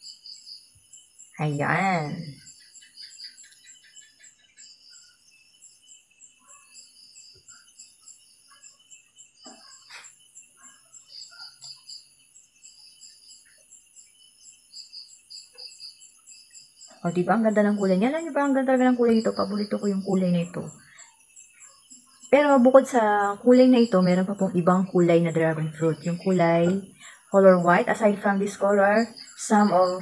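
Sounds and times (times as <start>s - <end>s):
insects chirping: 0.0s - 30.0s.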